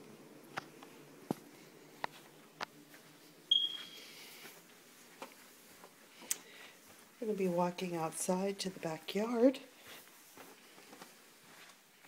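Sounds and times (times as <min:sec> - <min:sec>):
footsteps on carpeted stairs: 0:01.2 - 0:06.0, 0:09.8 - 0:11.8
short high-pitched electronic beep: 0:03.5 - 0:04.0.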